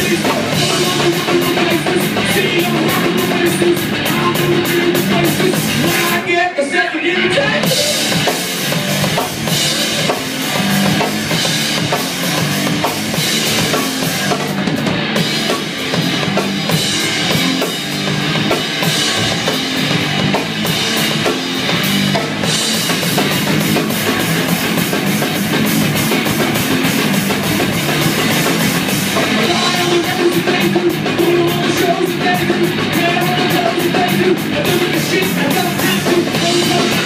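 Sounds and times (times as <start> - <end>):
drum kit with bass drum and snare: 0.0 - 6.5, 7.2 - 37.0
electric guitars: 0.0 - 37.0.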